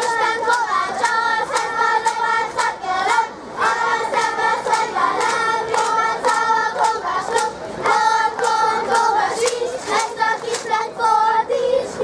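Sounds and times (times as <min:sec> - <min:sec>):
children singing in unison: 0:00.0 - 0:12.0.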